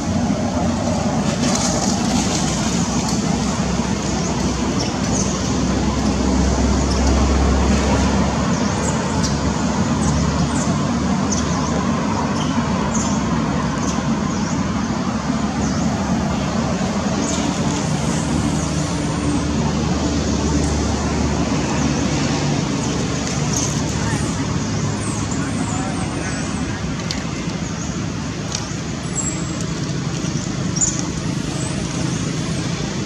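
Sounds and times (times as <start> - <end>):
road traffic rumble: 0.0 - 33.0.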